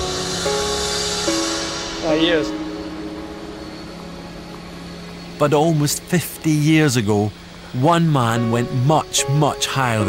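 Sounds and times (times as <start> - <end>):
even hiss: 0.0 - 10.0
steady low hum: 0.0 - 10.0.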